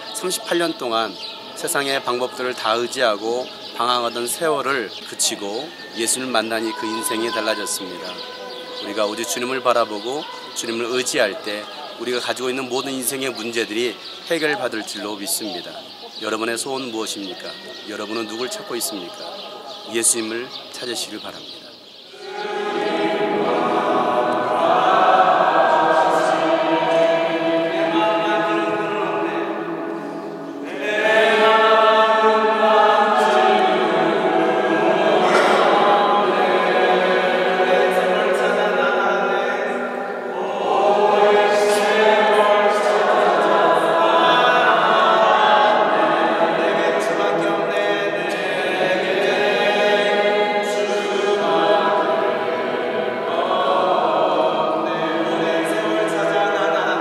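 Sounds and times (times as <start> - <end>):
choir singing sustained chords: 0.0 - 57.0.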